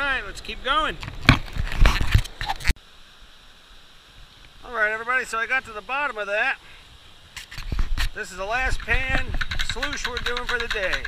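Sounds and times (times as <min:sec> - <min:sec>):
gold pan scraping and knocking: 0:08.6 - 0:11.0.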